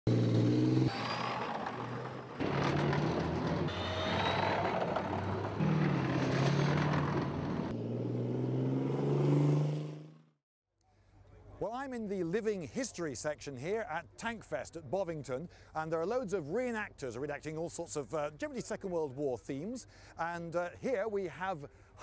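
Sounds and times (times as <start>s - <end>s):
tracked vehicle engines driving past: 0.1s - 10.3s.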